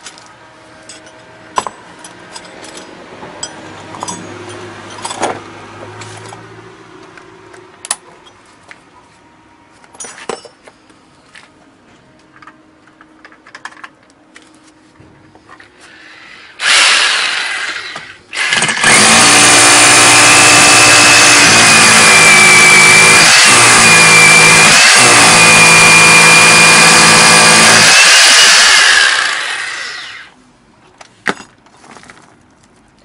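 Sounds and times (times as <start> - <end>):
rotary hammer drilling into concrete: 16.5 - 30.3.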